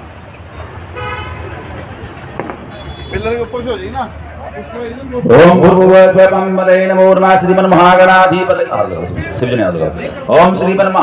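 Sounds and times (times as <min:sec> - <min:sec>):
horn toot: 0:00.9 - 0:01.6, 0:02.6 - 0:03.6.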